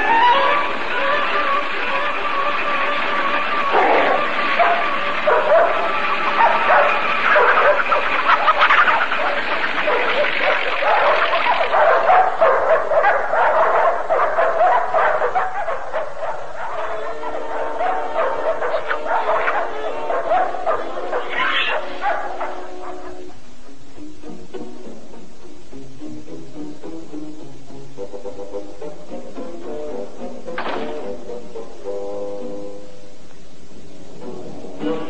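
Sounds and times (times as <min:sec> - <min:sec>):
cartoon dogs barking: 0:00.0 - 0:23.3
orchestral film score: 0:00.0 - 0:35.0.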